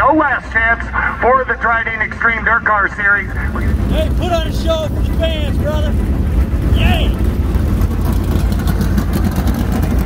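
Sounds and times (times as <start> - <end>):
race car engines idling: 0.0 - 10.0.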